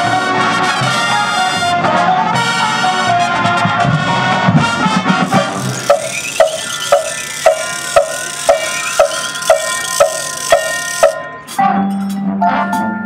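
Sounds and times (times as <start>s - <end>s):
percussion clock-like tick: 5.3s - 11.2s
held ringing chords: 5.3s - 12.3s.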